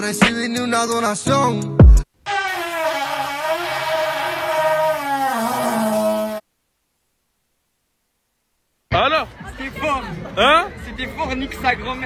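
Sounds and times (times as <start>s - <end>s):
buzzy horn-like held tone: 2.2s - 6.5s.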